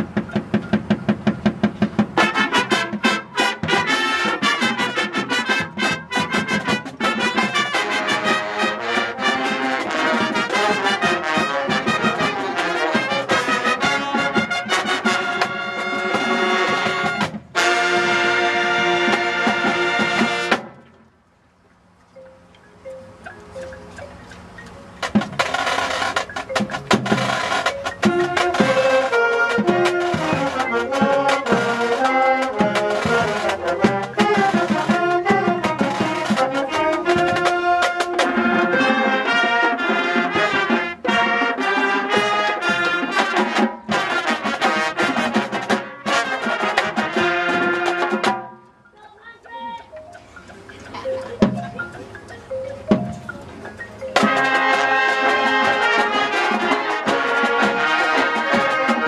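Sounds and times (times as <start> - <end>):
marching band with brass and drums: 0.0 - 21.2, 21.8 - 59.0.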